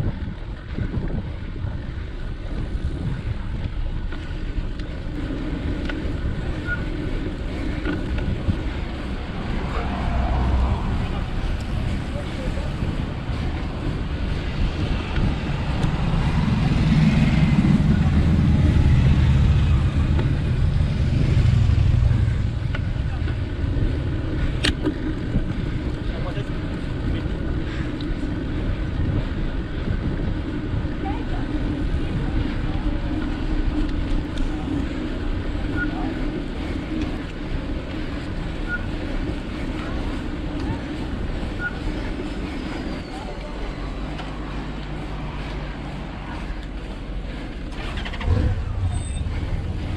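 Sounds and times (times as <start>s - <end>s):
wind and road rumble: 0.0s - 49.9s
car passing: 5.0s - 29.8s.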